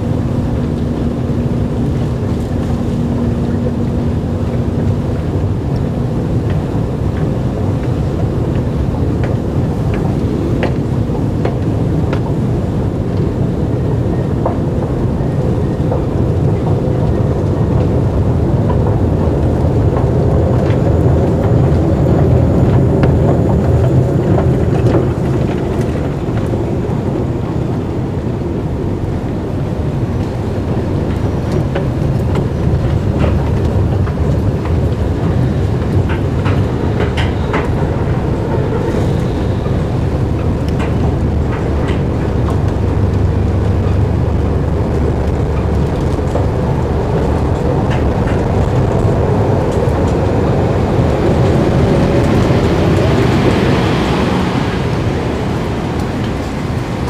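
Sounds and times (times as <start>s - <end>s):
escalator machinery rumbling: 0.0s - 57.0s
clicks and taps of moving steps: 30.2s - 43.3s.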